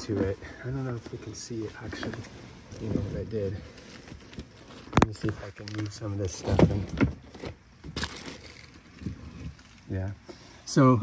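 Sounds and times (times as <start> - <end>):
soft handling bumps and rustles: 0.0 - 10.4.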